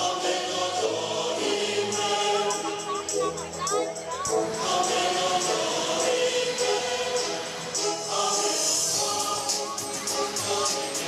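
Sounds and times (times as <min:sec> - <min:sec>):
choir singing sustained chords: 0:00.0 - 0:11.0.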